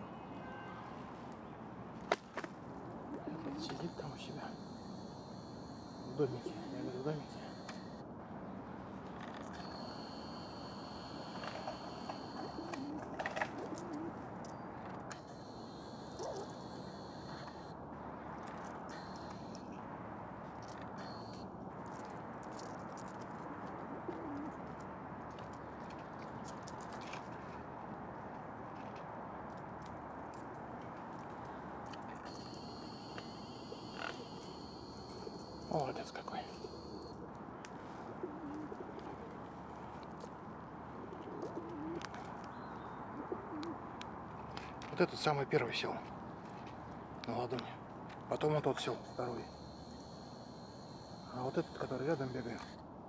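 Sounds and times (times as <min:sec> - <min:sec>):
pigeon cooing: 0:03.0 - 0:07.9, 0:09.6 - 0:14.2, 0:15.3 - 0:17.6, 0:23.9 - 0:24.6, 0:32.3 - 0:37.2, 0:37.9 - 0:39.6, 0:41.0 - 0:42.3, 0:43.0 - 0:43.8
background hiss: 0:09.3 - 0:13.0.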